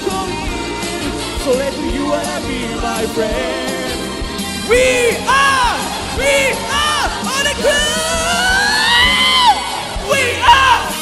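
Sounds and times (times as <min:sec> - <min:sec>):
loud backing track: 0:00.0 - 0:11.0.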